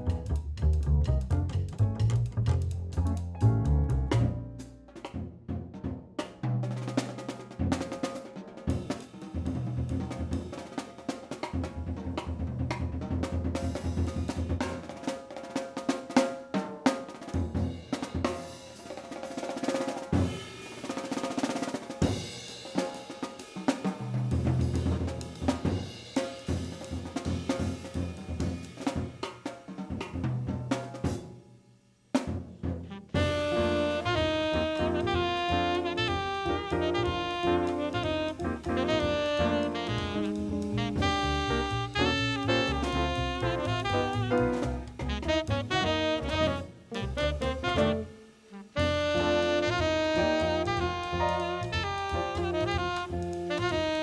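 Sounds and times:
jazz drum solo: 0:00.0 - 0:54.0.

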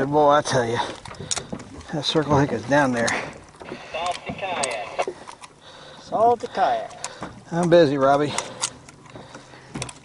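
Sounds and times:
person speaking: 0:03.8 - 0:05.1.

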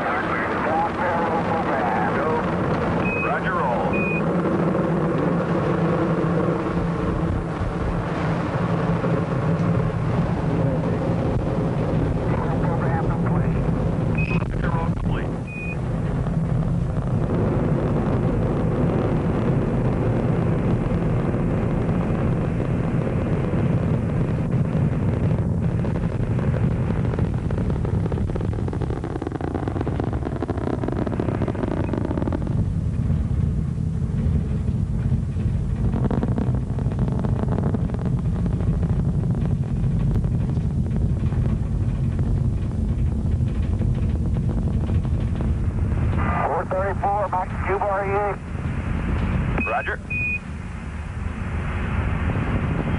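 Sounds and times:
rocket engines roaring: 0:00.0 - 0:52.9
short high radio beeps: 0:03.1 - 0:04.2, 0:49.6 - 0:50.4.

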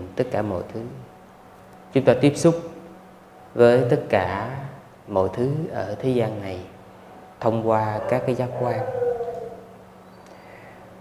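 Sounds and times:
low steady hum: 0:00.0 - 0:11.0
man speaking into microphone: 0:07.4 - 0:09.0.

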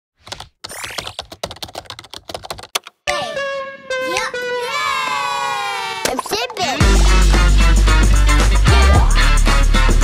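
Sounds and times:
rapid keyboard typing: 0:00.2 - 0:03.0.

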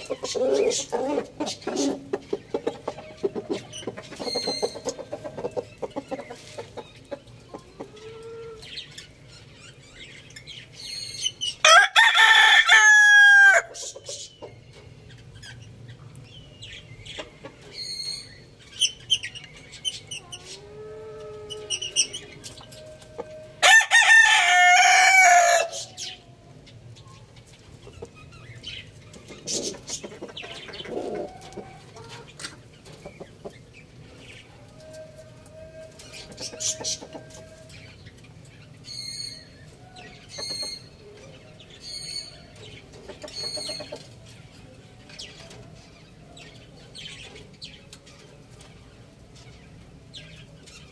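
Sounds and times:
rooster crowing: 0:11.6 - 0:13.7, 0:23.3 - 0:25.9.

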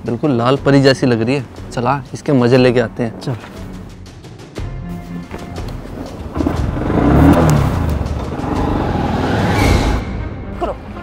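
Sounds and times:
motorcycle engine revving: 0:06.2 - 0:10.0.

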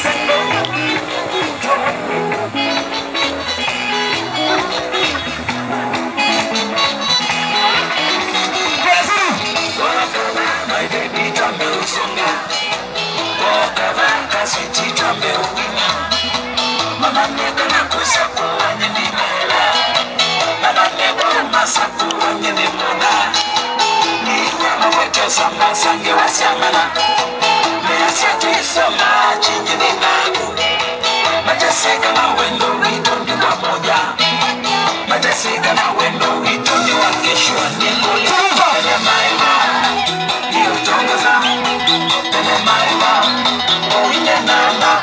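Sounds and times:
upbeat dance music: 0:00.0 - 0:45.0.

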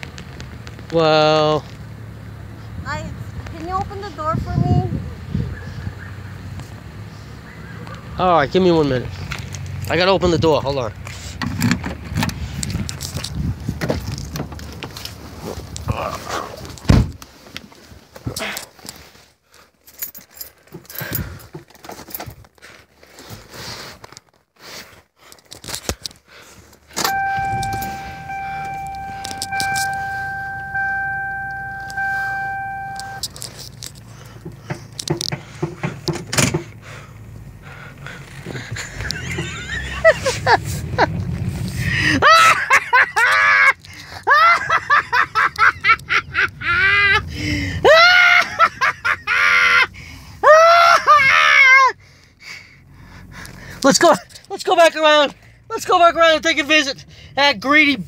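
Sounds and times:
clicks and knocks of car door: 0:16.8 - 0:17.2, 0:34.4 - 0:36.8
keys jangling: 0:19.8 - 0:22.4, 0:27.0 - 0:30.4
car warning chime dinging: 0:27.0 - 0:33.3.

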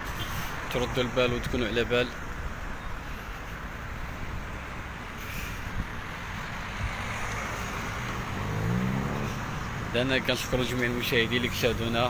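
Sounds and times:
road noise: 0:00.0 - 0:12.0
car engine rising in pitch: 0:06.1 - 0:10.0.

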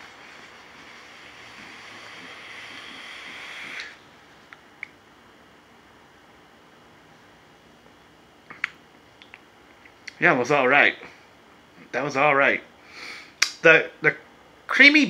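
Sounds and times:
vape air hiss: 0:00.0 - 0:04.0.

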